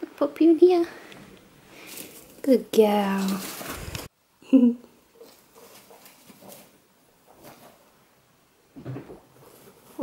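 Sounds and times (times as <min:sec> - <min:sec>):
guinea pig rustling in hay: 0:01.8 - 0:04.1, 0:05.2 - 0:07.8.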